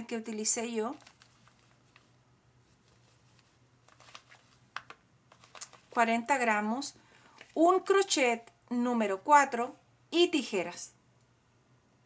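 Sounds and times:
yarn rustling in hands: 0.3 - 8.4.

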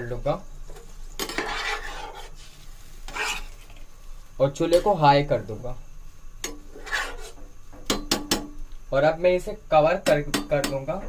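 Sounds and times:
metal spoon stirring rice in pot: 1.2 - 3.9, 6.4 - 7.4
spoon scraping pot: 1.2 - 3.9, 6.4 - 7.4.

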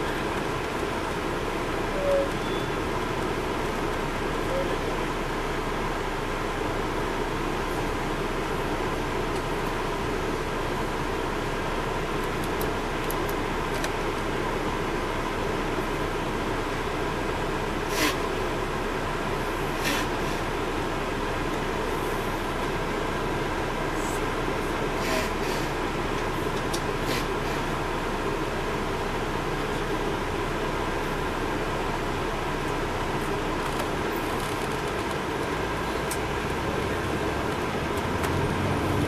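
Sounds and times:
bus cabin engine drone: 0.0 - 39.0.

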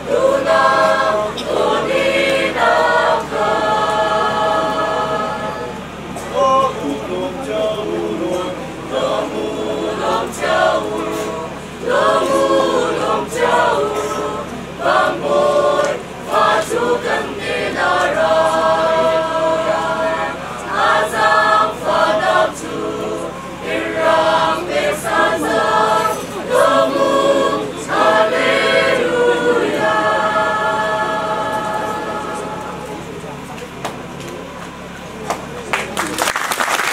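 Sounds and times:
mixed choir singing: 0.0 - 33.5.

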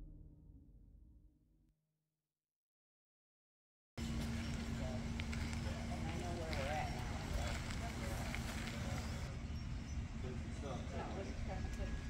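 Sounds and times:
distant people talking: 4.0 - 12.0.

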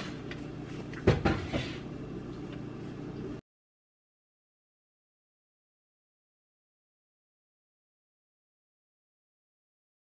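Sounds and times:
steady low hum: 0.0 - 3.4.

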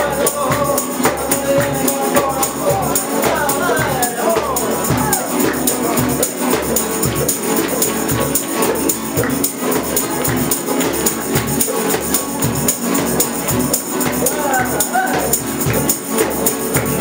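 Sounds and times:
man singing: 0.0 - 6.8, 14.2 - 15.6
acoustic guitars strumming: 0.0 - 17.0.

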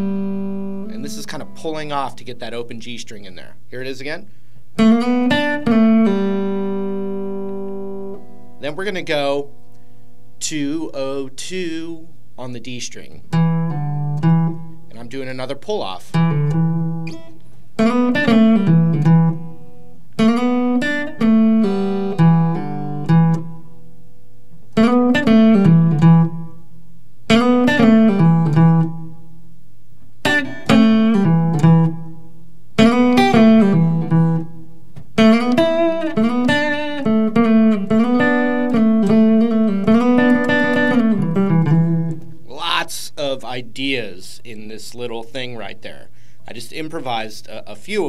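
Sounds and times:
electric guitar blues licks: 0.0 - 3.0, 4.8 - 9.9, 13.3 - 14.9, 16.1 - 29.4, 30.0 - 43.8.

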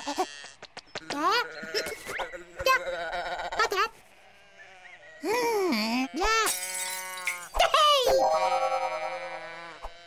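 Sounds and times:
cartoon sheep bleating: 0.0 - 10.0.

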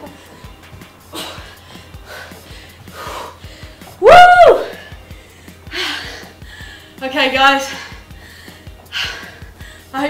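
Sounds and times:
woman breathing hard: 0.0 - 4.0, 4.6 - 7.0, 7.6 - 10.0
woman whooping: 4.0 - 4.9.

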